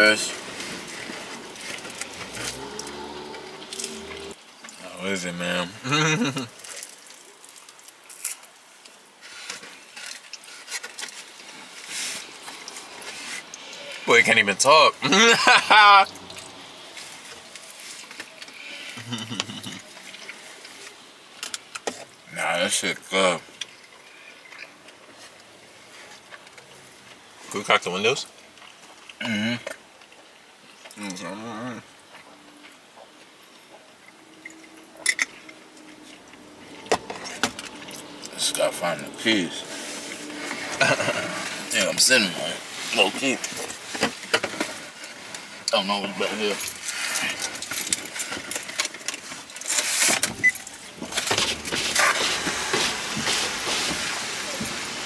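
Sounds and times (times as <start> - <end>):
soft rustles: 39.4 - 55.0.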